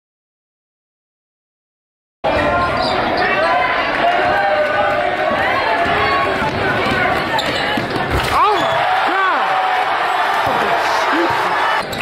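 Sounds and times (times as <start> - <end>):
crowd chatter and shouts: 2.2 - 12.0.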